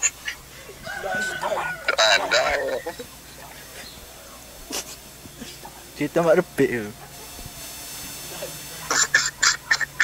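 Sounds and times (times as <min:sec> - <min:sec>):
muffled stifled laughter: 0:02.0 - 0:03.5, 0:04.6 - 0:05.6.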